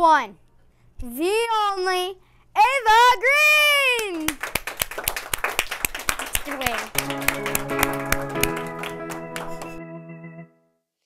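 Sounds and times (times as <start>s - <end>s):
hand clapping: 4.0s - 9.8s
guitar sustained chords: 7.0s - 10.6s.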